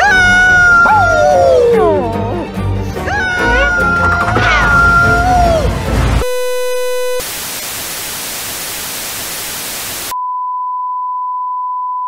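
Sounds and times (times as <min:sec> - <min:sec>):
cartoon dog howling: 0:00.0 - 0:05.8.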